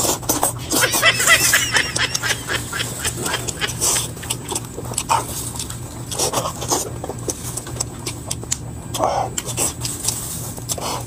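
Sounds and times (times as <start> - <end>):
chewing and lip smacking: 2.0 - 11.0.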